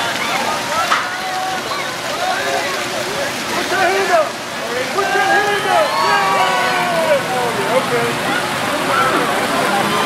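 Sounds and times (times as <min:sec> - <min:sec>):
water fountains splashing: 0:00.0 - 0:10.0
riders screaming: 0:05.0 - 0:07.3.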